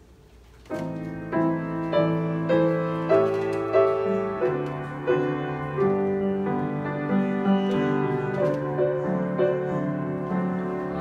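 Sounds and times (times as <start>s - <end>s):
grand piano playing: 0.6s - 11.0s.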